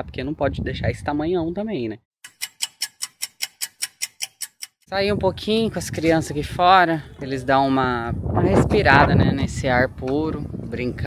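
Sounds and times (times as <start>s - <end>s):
clock ticking: 2.2s - 4.9s.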